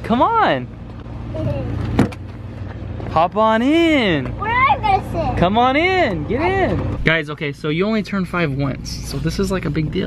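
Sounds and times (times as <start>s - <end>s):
car idling hum: 0.0s - 10.0s.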